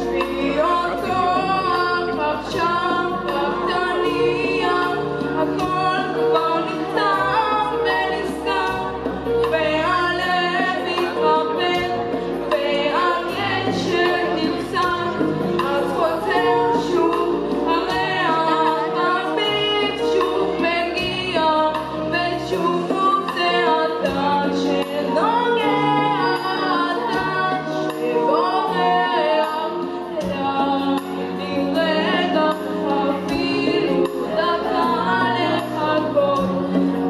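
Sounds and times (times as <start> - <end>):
boy singing through microphone: 0.0 - 36.8
instrumental accompaniment: 0.0 - 37.0.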